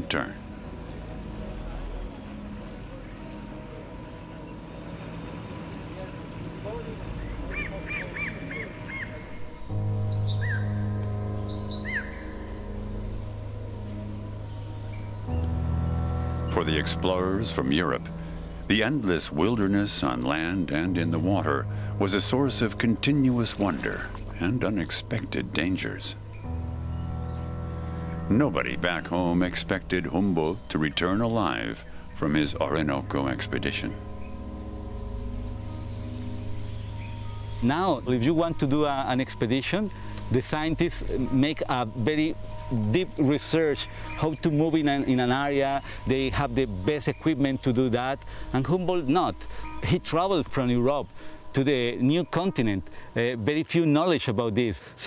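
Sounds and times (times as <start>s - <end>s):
steady low hum: 0.0s - 53.3s
low music drone: 0.0s - 55.0s
bird calling: 2.2s - 15.6s, 16.3s - 53.2s.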